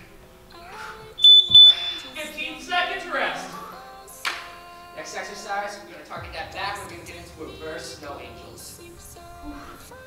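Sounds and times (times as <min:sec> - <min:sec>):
high-pitched electronic beeps: 0:01.2 - 0:02.2.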